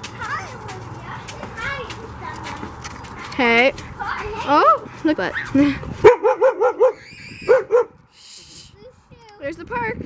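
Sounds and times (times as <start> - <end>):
child squealing: 6.9 - 7.7.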